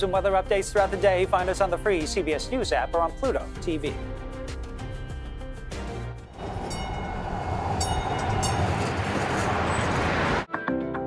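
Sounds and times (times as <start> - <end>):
light rail train rumbling past: 6.2 - 10.5.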